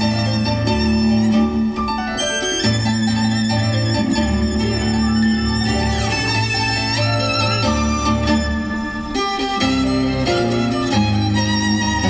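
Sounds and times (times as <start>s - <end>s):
low bass line: 0.0s - 12.0s
violin melody: 0.0s - 12.0s.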